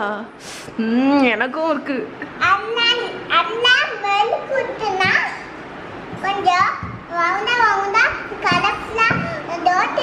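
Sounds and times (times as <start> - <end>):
girl talking high-pitched: 2.4 - 5.5, 6.2 - 10.0.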